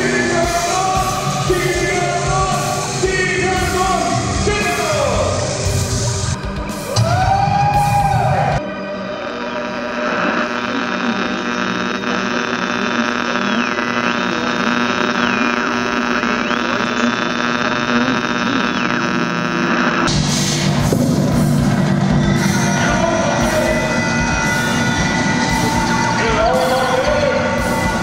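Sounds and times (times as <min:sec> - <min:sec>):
loud rock music with drums: 0:00.0 - 0:08.6, 0:20.1 - 0:28.0
steady electric hum: 0:08.3 - 0:28.0
high electronic two-pitch tone: 0:21.4 - 0:28.0.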